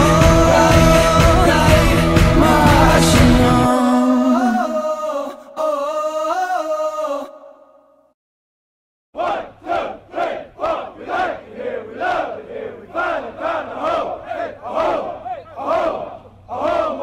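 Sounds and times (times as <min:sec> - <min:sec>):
group shouting a chant: 0:09.2 - 0:17.0.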